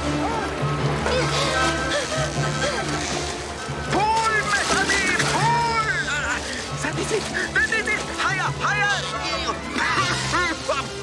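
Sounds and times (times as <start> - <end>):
orchestral film score: 0.0 - 11.0.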